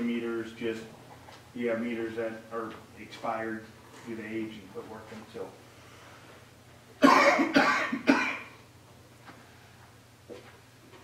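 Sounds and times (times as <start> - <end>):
person coughing loudly: 7.0 - 8.6.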